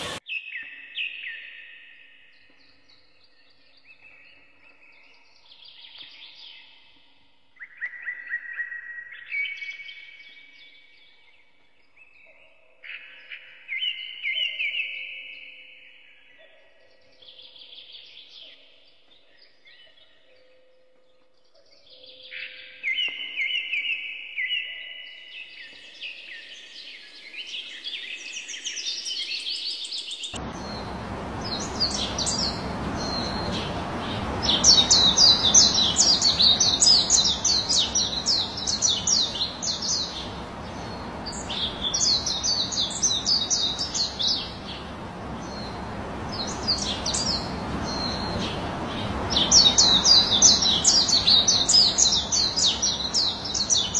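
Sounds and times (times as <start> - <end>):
steady rushing background noise: 0.0 - 0.2, 30.4 - 53.9
birds chirping and singing: 21.4 - 53.9.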